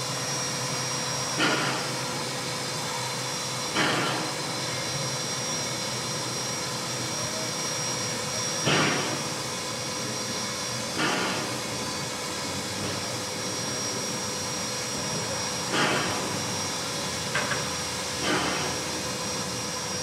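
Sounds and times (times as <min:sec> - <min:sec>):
steam hissing: 0:00.0 - 0:20.0.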